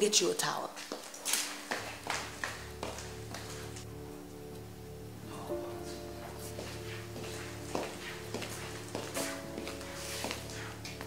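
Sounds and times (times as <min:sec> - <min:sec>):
soft music with held chords: 0:01.3 - 0:11.0.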